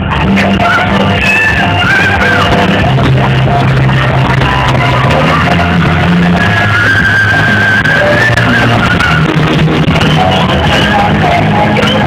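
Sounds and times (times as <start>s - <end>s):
live band music over pa: 0.0s - 12.0s
steady bass: 0.0s - 12.0s.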